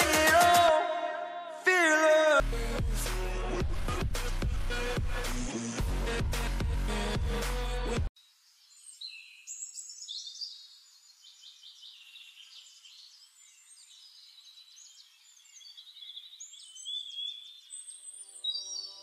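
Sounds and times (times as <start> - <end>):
birds singing and chirping: 8.5 - 19.0.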